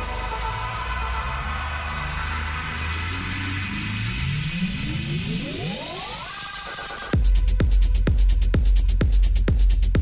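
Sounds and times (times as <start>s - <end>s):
synthesizer riser sweeping upward: 0.0s - 7.2s.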